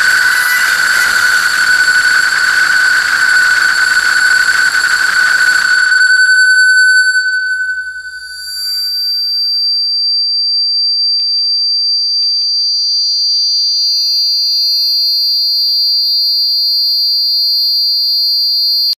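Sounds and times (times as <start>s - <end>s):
low hum: 0.0s - 8.9s
piercing high electronic tone: 0.0s - 10.1s.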